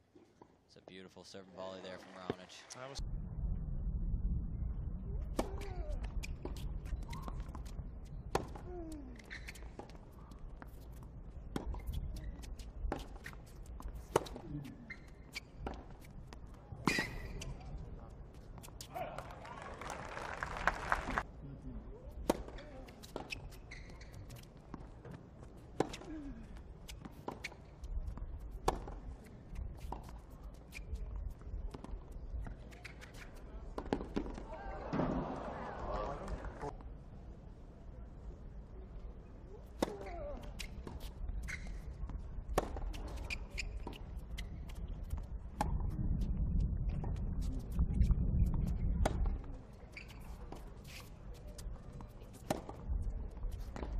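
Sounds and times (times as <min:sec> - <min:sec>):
tennis balls struck and bouncing: 0:31.7 - 0:35.4
crowd voices: 0:33.6 - 0:36.7.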